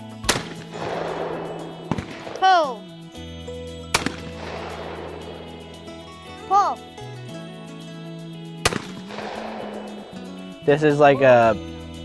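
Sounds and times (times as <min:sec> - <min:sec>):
background music: 0:00.0 - 0:12.0
shotgun shot with echo: 0:00.2 - 0:02.6, 0:03.9 - 0:05.6, 0:08.6 - 0:10.0.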